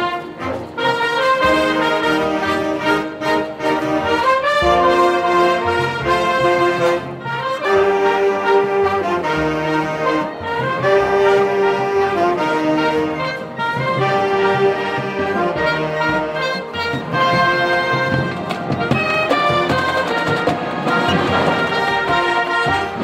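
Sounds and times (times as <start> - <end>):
marching band playing: 0.0 - 23.0.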